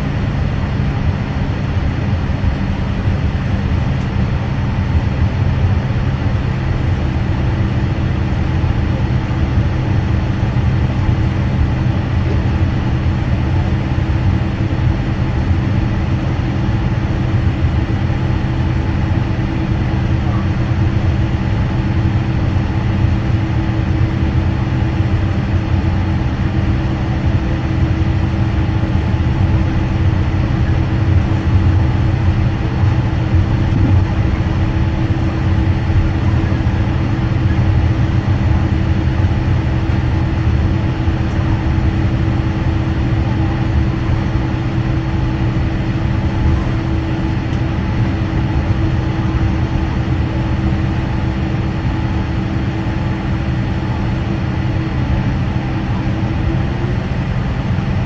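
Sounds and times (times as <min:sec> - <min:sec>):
jet engine drone: 0:00.0 - 0:58.0
low rolling rumble: 0:27.2 - 0:50.4.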